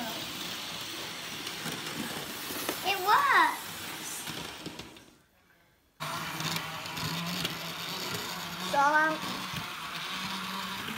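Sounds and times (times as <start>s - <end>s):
model train motor hum: 0.0s - 4.8s, 6.0s - 10.9s.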